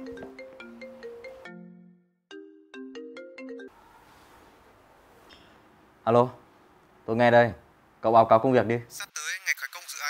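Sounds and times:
marimba phone ringtone: 0:00.0 - 0:03.7.

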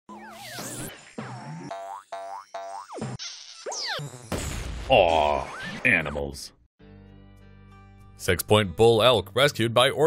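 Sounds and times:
rising cartoon boings: 0:00.1 - 0:05.8.

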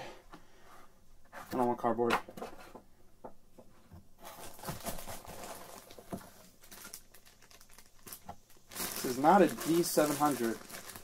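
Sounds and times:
cardboard packaging rustling: 0:04.2 - 0:11.0
plastic bag crinkling: 0:04.2 - 0:11.0.

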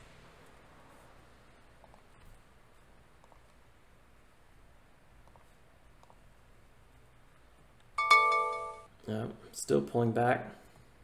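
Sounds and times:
bell-like electronic chime: 0:08.0 - 0:08.9.

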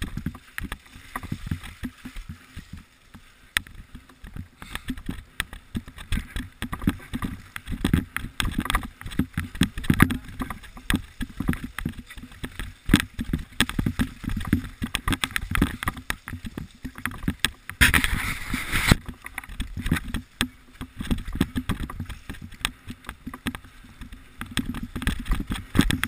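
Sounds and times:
bike rattling over bumps: 0:00.0 - 0:02.8, 0:03.6 - 0:26.0
wind on microphone: 0:04.4 - 0:26.0.

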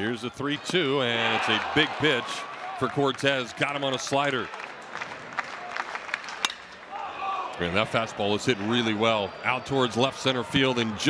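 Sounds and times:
ballpark crowd noise: 0:00.0 - 0:11.0
metal bat cracking on ball: 0:06.4 - 0:06.8.

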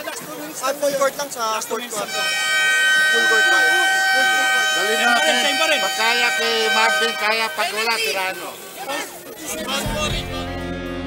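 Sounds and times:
men talking: 0:00.0 - 0:10.6
buzzing horn tone: 0:02.0 - 0:08.8.

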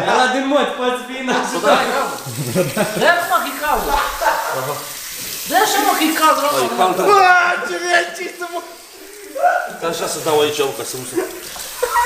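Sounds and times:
man talking: 0:00.0 - 0:05.0, 0:06.0 - 0:08.9, 0:09.6 - 0:11.4
water spraying into basin: 0:01.4 - 0:12.0.

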